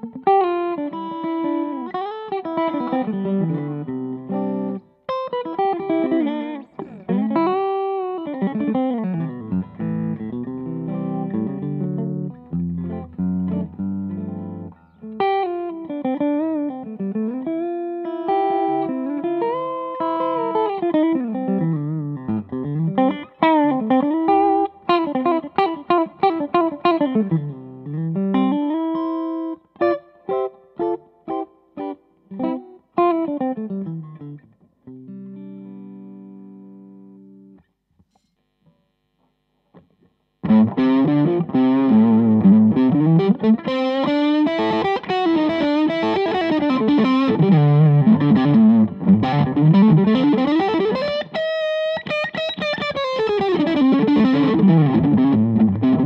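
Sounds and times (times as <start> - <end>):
electric guitar lead line: 0.0 - 37.6, 39.8 - 56.0.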